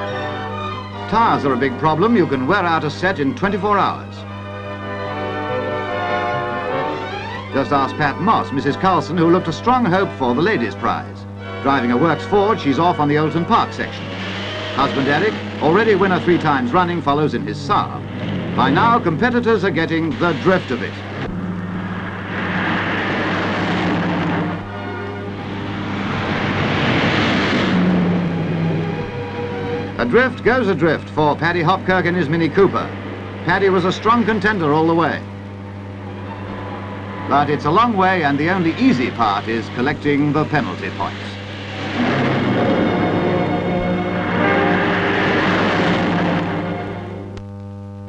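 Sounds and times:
steady low hum: 0.0 - 48.0
rally cars driving past: 13.6 - 17.0, 17.6 - 19.4, 20.0 - 47.3.

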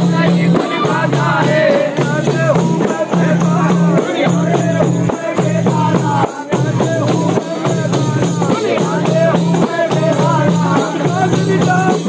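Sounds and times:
frame drums beaten in rhythm: 0.0 - 12.0
men chanting: 0.0 - 12.0.

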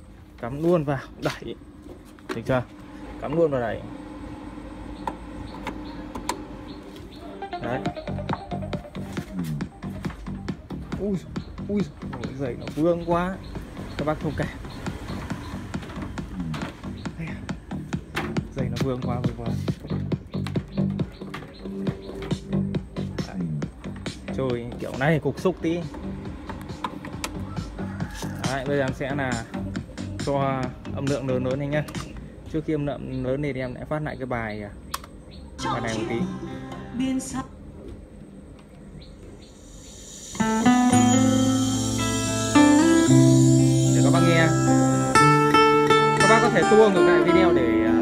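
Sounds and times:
electrical hum from speakers: 0.0 - 48.0
repeating bass line: 2.6 - 31.6, 39.9 - 48.0
song playing through speakers: 7.4 - 11.4, 40.4 - 48.0
music through speakers: 7.4 - 32.1, 40.1 - 48.0.

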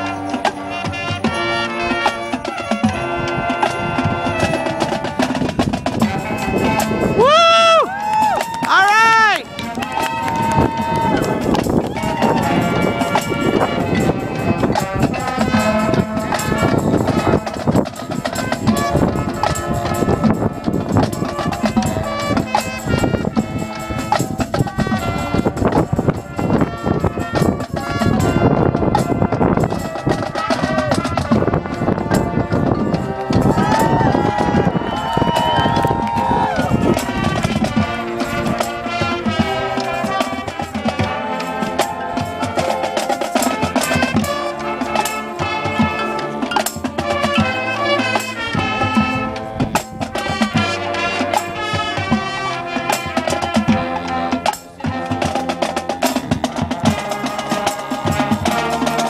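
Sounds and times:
marching band brass chord: 0.0 - 7.2, 8.0 - 59.0
drumline playing rapid rhythms: 0.0 - 59.0.

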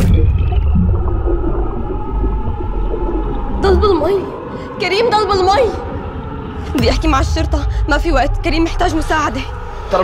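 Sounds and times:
deep underwater rumble: 0.0 - 4.8.

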